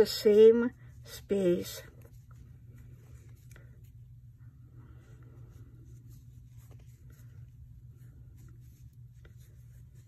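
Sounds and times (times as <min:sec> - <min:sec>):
steady low hum: 0:00.0 - 0:10.0
yarn rustling on crochet hook: 0:05.4 - 0:10.0.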